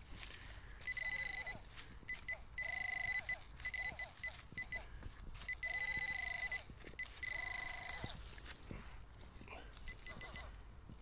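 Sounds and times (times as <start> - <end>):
buzzing electronic alert tone: 5.6 - 8.1.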